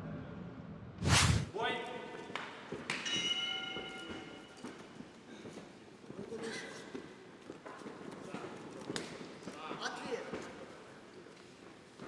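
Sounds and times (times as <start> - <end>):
swishing hit with low thud: 1.0 - 1.5.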